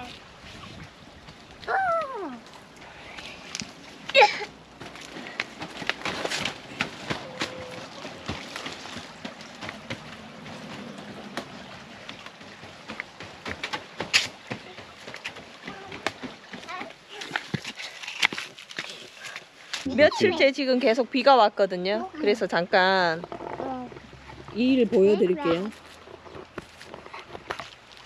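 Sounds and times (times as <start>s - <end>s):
footsteps on wooden boards: 4.1s - 19.9s.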